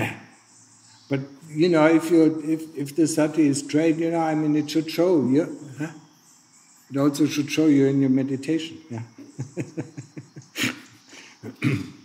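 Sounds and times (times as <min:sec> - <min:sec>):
man laughing: 0:08.8 - 0:11.9
man coughing: 0:10.6 - 0:12.0.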